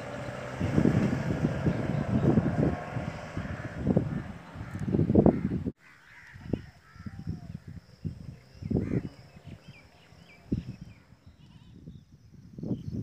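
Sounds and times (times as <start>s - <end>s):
vehicle passing with low rumble: 0.0s - 5.7s, 8.6s - 11.3s
faint outdoor background: 0.0s - 13.0s
wind buffeting microphone: 0.0s - 13.0s.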